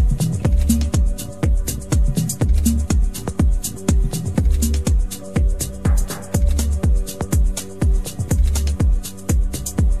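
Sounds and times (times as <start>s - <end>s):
electronic dance music: 0.0s - 10.0s
hi-hats: 0.0s - 10.0s
kick drum: 0.0s - 10.0s.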